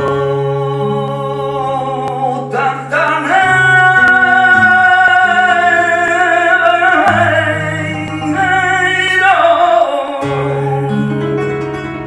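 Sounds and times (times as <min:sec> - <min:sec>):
man singing flamenco: 0:00.0 - 0:11.8
flamenco guitar: 0:00.0 - 0:12.0.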